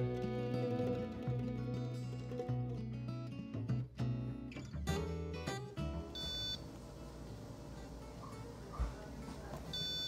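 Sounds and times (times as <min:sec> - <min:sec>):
guitar music: 0:00.0 - 0:07.1
patient monitor beep: 0:06.2 - 0:06.6, 0:09.7 - 0:10.0.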